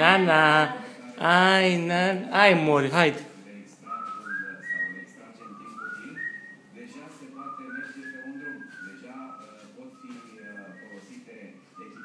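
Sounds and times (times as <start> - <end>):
parrot whistling a tune: 3.9 - 6.6, 7.4 - 12.0.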